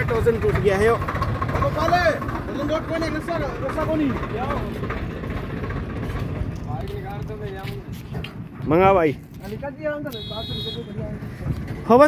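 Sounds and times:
men talking: 0.0s - 5.6s, 6.2s - 12.0s
tractor diesel engine running: 0.0s - 9.4s.

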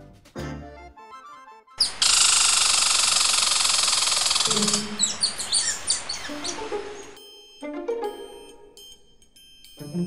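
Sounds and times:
high falling chirps: 1.8s - 7.2s.

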